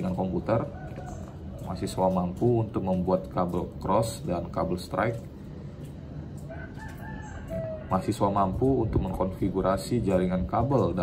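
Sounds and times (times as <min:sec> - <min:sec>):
distant rooster crowing: 0:00.4 - 0:02.4, 0:06.4 - 0:08.8.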